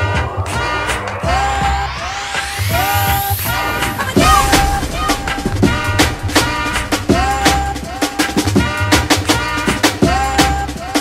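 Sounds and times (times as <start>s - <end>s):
rising noise sweep: 1.1s - 8.6s
house dance music: 1.3s - 10.8s.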